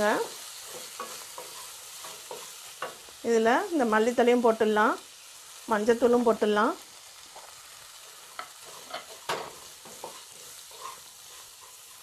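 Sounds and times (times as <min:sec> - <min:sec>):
spatula scraping pan: 0:00.0 - 0:03.1, 0:07.4 - 0:12.0
vegetables sizzling in oil: 0:00.0 - 0:12.0.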